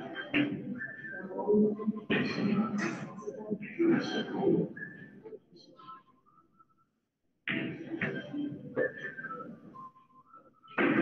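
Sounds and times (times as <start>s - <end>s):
person whistling: 8.8s - 10.7s.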